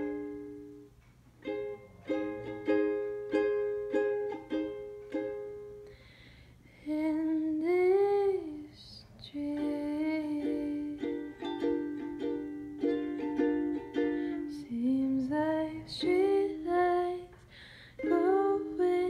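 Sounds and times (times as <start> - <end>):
ukulele playing: 0.0 - 5.9, 9.4 - 17.3, 18.0 - 19.0
person singing: 1.5 - 5.3, 6.8 - 17.4, 18.0 - 19.0.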